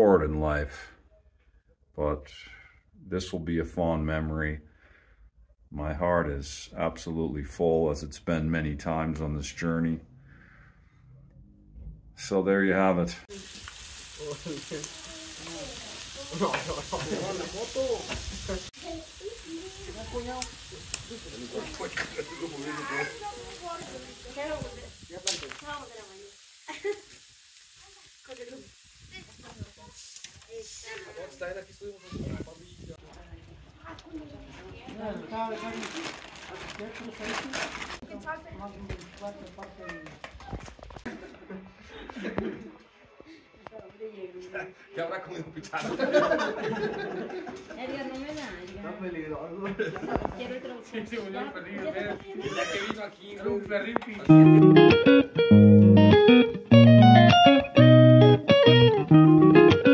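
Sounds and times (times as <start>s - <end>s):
meat and onions sizzling: 13.2s - 33.1s, 54.3s - 59.9s
people laughing: 16.3s - 18.7s, 21.1s - 22.8s, 26.7s - 27.1s, 41.1s - 42.9s, 45.3s - 48.0s, 49.6s - 50.8s
people talking casually: 28.0s - 55.2s.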